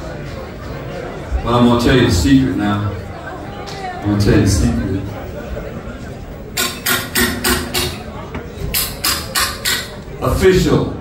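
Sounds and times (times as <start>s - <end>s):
sharp knocks: 6.6s - 10.0s.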